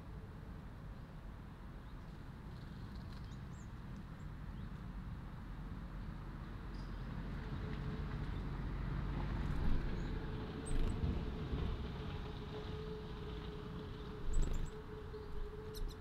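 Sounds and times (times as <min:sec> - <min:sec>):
distant traffic rumble: 0:01.5 - 0:16.0
small birds chirping: 0:14.3 - 0:16.0.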